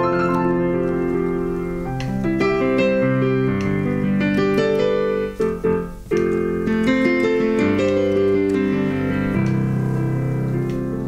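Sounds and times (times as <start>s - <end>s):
digital piano chords and melody: 0.0s - 11.0s.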